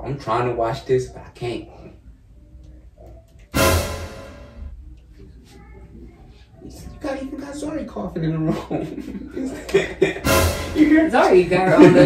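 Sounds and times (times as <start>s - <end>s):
deep boom: 3.6s - 4.7s
dramatic musical sting: 3.6s - 4.7s, 10.2s - 11.2s.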